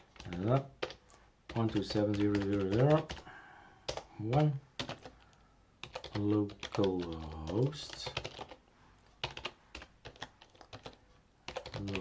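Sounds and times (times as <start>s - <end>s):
keyboard typing clicks: 5.8s - 8.6s, 9.2s - 12.0s.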